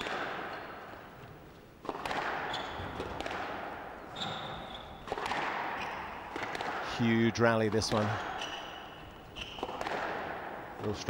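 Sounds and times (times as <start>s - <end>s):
shoes squeaking on court: 0.0s - 6.6s, 7.7s - 10.0s
squash ball hitting rackets and walls: 0.0s - 11.0s.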